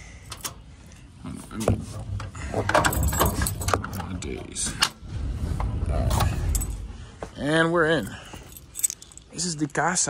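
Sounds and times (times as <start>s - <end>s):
keys jangling in lock: 0.3s - 0.6s, 2.6s - 4.2s, 6.2s - 6.9s, 8.0s - 9.9s
low rumble: 1.8s - 8.7s.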